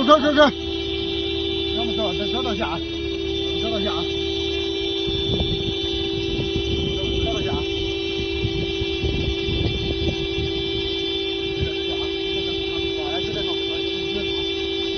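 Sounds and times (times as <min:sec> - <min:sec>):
car horn sounding continuously: 0:00.0 - 0:14.9
faint voices: 0:00.0 - 0:14.9.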